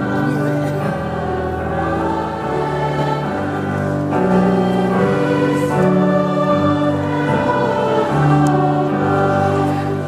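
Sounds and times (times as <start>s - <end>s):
school ensemble playing a carol: 0.0s - 10.0s.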